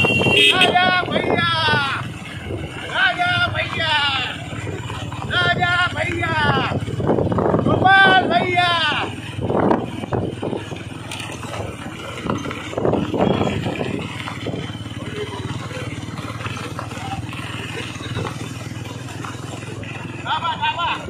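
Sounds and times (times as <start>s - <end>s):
motorcycles running at low speed: 0.0s - 21.0s
voices: 0.0s - 21.0s.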